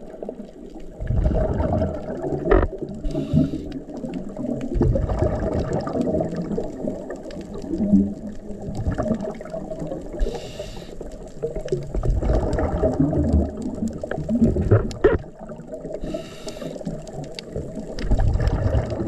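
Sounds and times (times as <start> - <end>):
bubbles gurgling underwater: 0.0 - 19.0
regulator inhalation hiss: 3.1 - 3.7, 10.2 - 11.1, 16.0 - 16.9.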